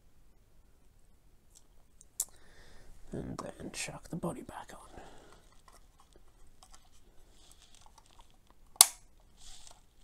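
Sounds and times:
faint soft hiss: 0.0s - 10.0s
sharp plastic click: 8.7s - 9.1s.

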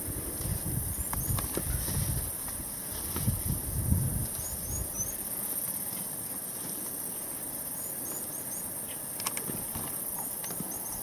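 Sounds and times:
high-pitched insect drone: 0.0s - 11.0s
light clicks: 9.2s - 9.6s.

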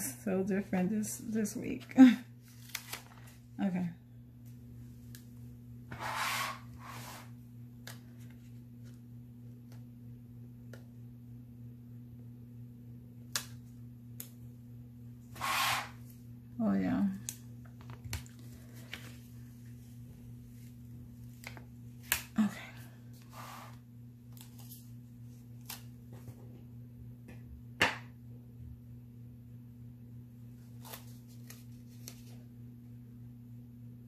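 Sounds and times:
steady low hum: 0.0s - 34.0s
paper rustling: 2.4s - 3.4s, 30.7s - 32.4s.

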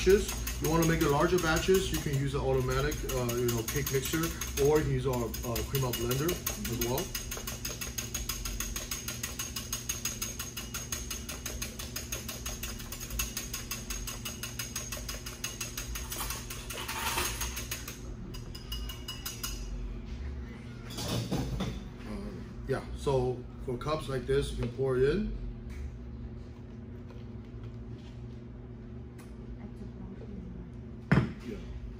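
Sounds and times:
whisk clicking against glass: 0.0s - 16.7s.

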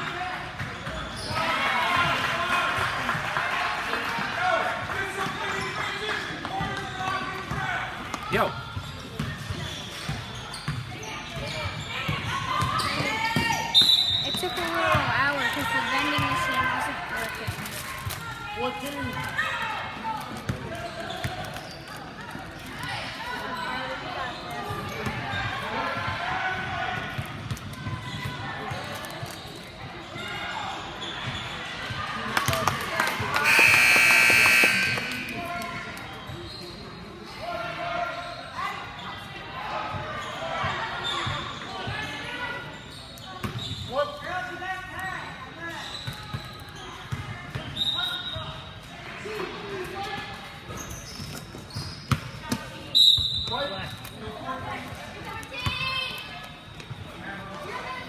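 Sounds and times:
crowd and player voices: 0.0s - 58.0s
shoe squeaks: 0.7s - 1.5s, 8.3s - 16.3s, 20.8s - 22.2s, 29.1s - 31.6s, 33.4s - 37.4s, 40.2s - 44.1s, 45.1s - 48.7s, 50.7s - 54.4s
scoreboard buzzer: 33.4s - 35.4s.

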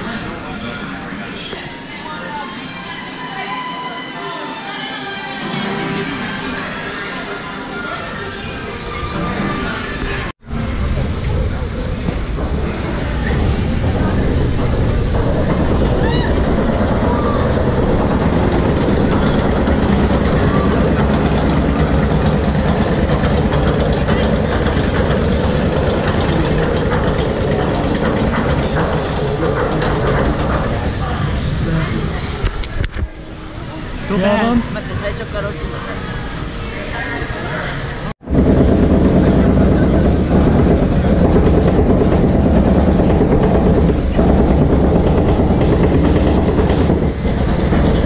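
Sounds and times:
crowd chatter: 0.0s - 48.0s
loud steady rushing of ride boat: 9.4s - 48.0s.

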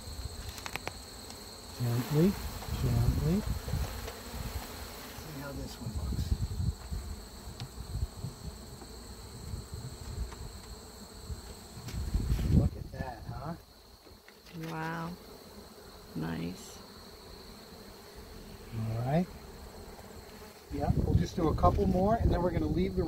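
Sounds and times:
bees buzzing: 0.0s - 12.4s, 13.7s - 21.0s.

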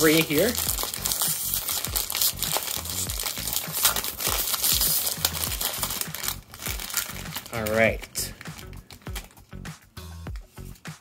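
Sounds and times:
plastic packaging crinkling: 0.0s - 9.5s.

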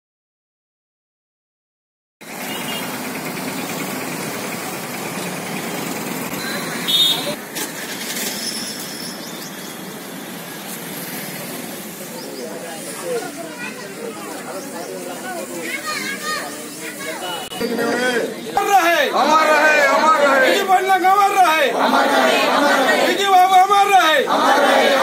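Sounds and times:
traffic noise: 2.2s - 25.0s
indistinct voices: 11.4s - 25.0s.

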